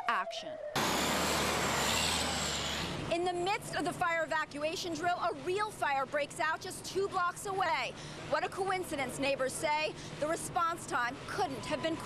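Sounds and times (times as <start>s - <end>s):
fire engine passing: 0.6s - 3.8s.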